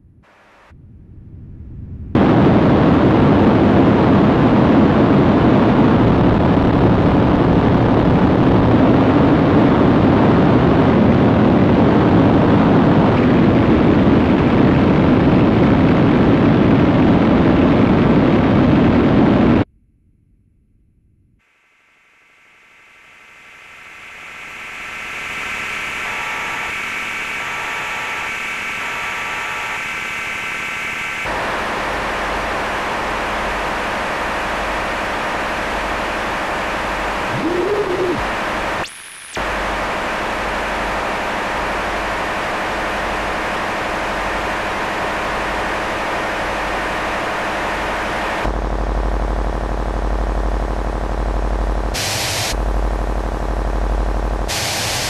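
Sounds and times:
low pulsing rumble: 0.0s - 18.6s, 19.6s - 21.4s, 31.4s - 38.8s, 48.5s - 52.0s, 52.6s - 54.5s
harsh noise drone music: 31.2s - 55.0s.

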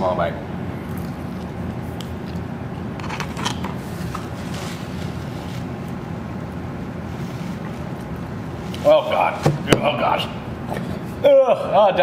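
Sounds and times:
ventilation rumble and hiss: 0.0s - 12.0s.

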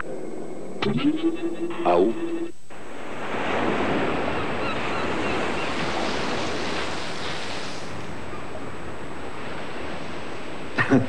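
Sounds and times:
wind: 0.0s - 11.0s
surf breaking on a beach: 2.7s - 11.0s.

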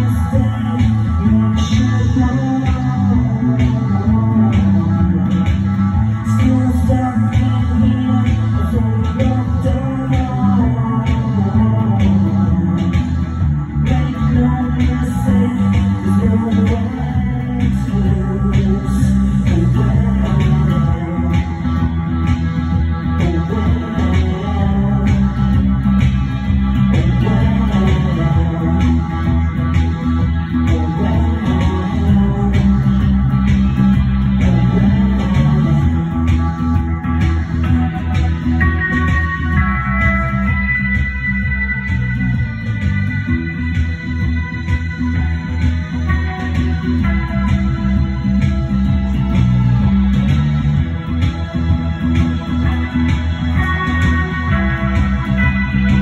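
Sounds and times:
electric bass: 0.0s - 56.0s
electric guitar: 0.0s - 56.0s.

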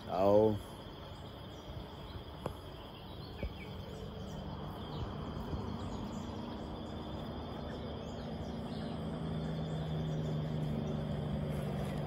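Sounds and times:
rough outdoor background noise: 0.0s - 12.0s
low motor hum: 0.9s - 12.0s.

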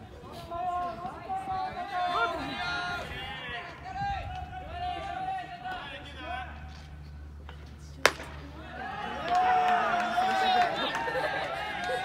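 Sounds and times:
voices calling out: 0.0s - 12.0s
long drawn-out shout: 0.2s - 6.5s, 8.6s - 12.0s
baseball popping into mitt: 8.0s - 8.4s.

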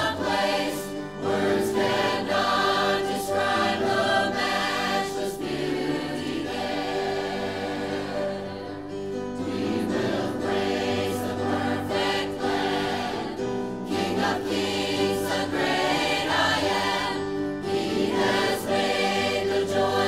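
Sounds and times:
mixed choir singing a hymn: 0.0s - 20.0s.

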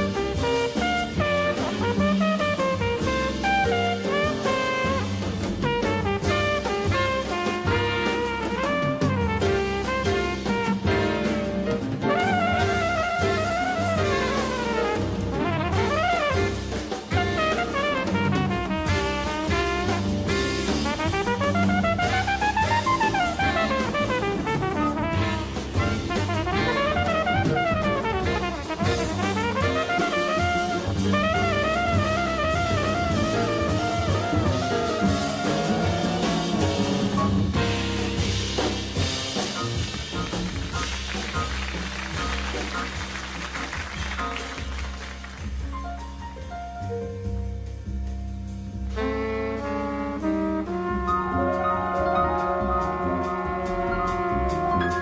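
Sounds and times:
drum kit with cymbals: 0.0s - 55.0s
jazz flugelhorn solo: 0.0s - 55.0s
walking bass: 0.0s - 55.0s.

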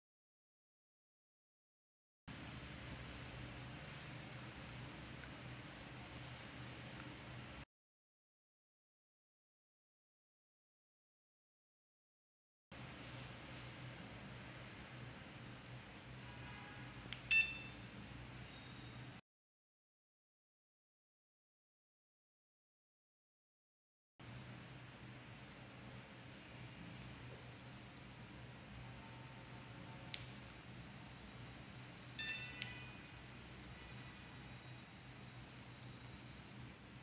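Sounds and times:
short high electronic beep: 32.2s - 33.0s.

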